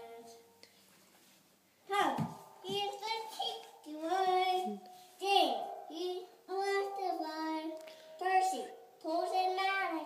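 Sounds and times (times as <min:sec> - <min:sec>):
toddler singing into toy microphone: 0:02.6 - 0:10.0.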